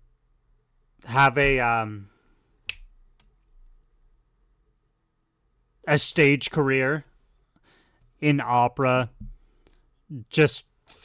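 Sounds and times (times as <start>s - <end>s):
finger snap: 2.6s - 3.3s.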